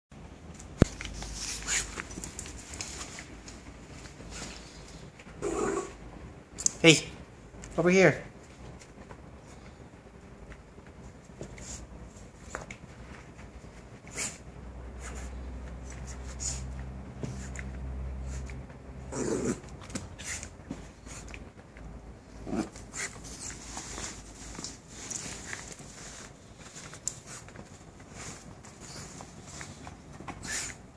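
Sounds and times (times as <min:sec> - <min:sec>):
clicks and rustles of dog playing: 0:00.4 - 0:05.4, 0:08.4 - 0:30.9
puppy growling: 0:05.3 - 0:06.1, 0:18.3 - 0:20.5, 0:22.3 - 0:23.8
puppy vocalization: 0:05.4 - 0:06.0.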